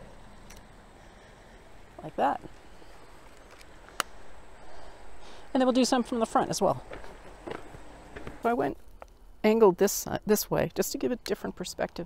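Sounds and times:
faint handling rustle: 2.5 - 4.9.

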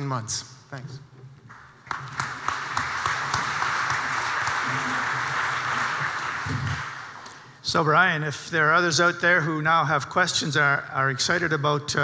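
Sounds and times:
audience applauding: 1.5 - 7.6.

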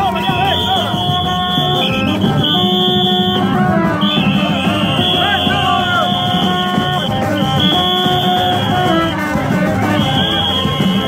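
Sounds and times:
low drumming: 0.0 - 11.0
shrill high wind note: 0.0 - 11.0.

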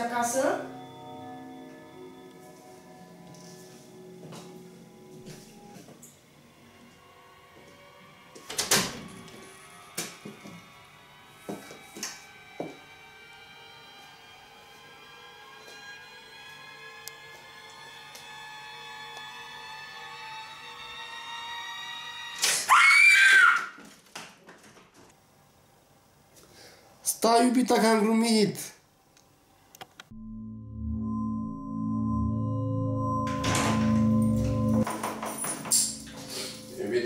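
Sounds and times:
faint background music: 0.0 - 9.9, 33.3 - 37.0
woman screaming: 22.6 - 23.8.

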